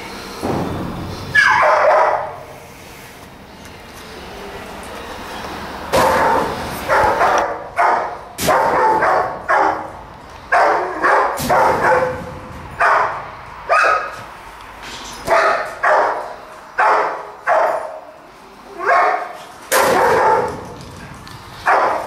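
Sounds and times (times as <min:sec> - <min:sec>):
dog barking: 0:01.4 - 0:02.4, 0:06.0 - 0:09.9, 0:10.5 - 0:14.2, 0:15.3 - 0:18.0, 0:18.8 - 0:20.8, 0:21.6 - 0:22.0.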